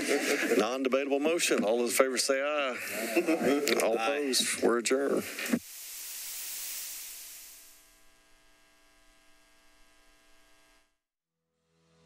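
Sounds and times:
hiss: 5.2 - 7.9.

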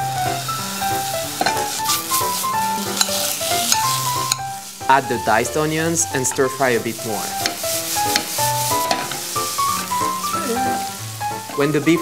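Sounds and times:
background music melody: 0.0 - 12.0
meat sizzling in a frying pan: 0.0 - 12.0.

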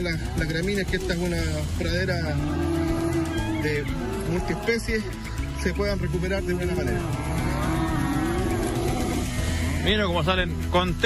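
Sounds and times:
cattle mooing: 2.1 - 5.1, 6.6 - 10.0.

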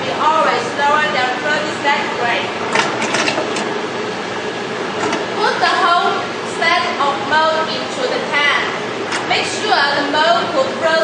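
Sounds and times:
machine humming: 0.0 - 11.0.

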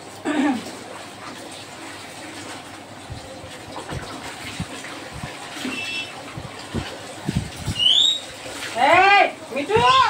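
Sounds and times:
water sloshing and splashing: 0.0 - 10.0.

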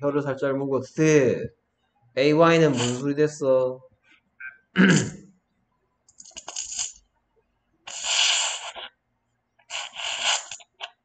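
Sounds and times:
person clearing throat: 4.8 - 5.2.

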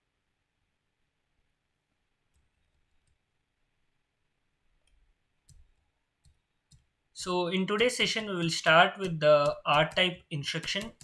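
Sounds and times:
computer mouse clicks: 4.8 - 6.9.

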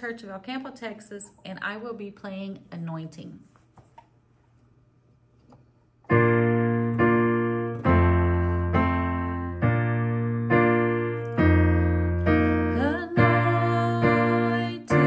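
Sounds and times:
piano chords: 6.1 - 15.0.

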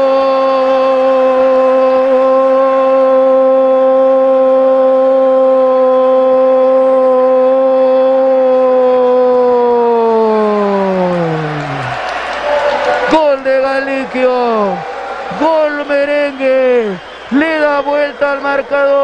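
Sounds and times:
commentator shouting goal: 0.0 - 19.0.

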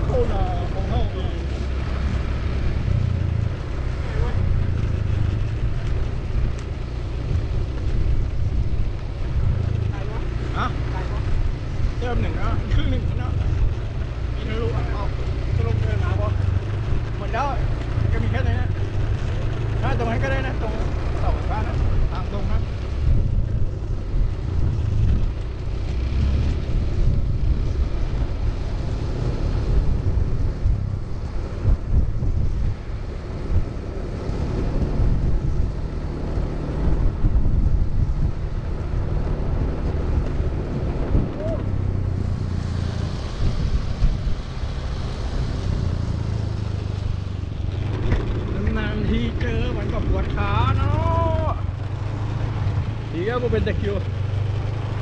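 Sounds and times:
skate wheels rolling on concrete: 0.0 - 55.0
wind buffeting microphone: 0.0 - 55.0.

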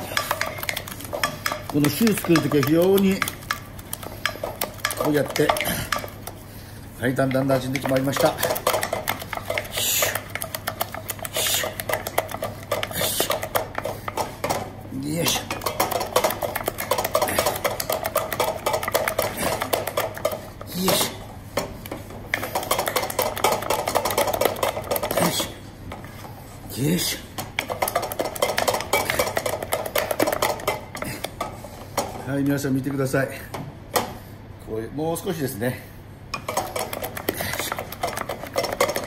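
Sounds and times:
spatula scraping and slapping dough: 0.0 - 26.3.

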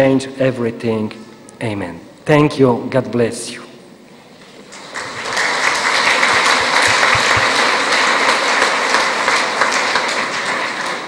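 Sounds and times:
audience applauding: 4.7 - 11.0.

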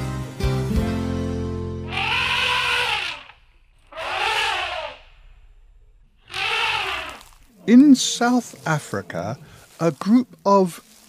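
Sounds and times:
elephant trumpeting: 1.9 - 5.6, 6.2 - 9.8.

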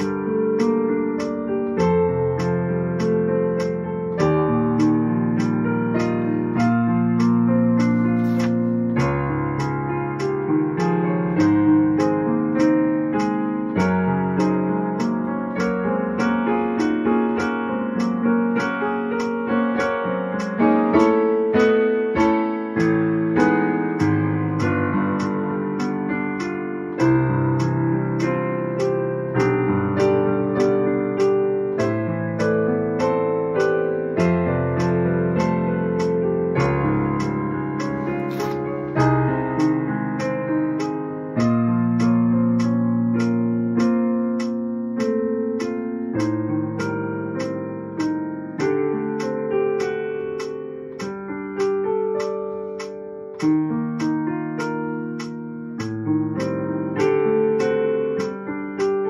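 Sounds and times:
metronome clicking: 0.0 - 59.0
piano playing chords: 0.0 - 59.0.

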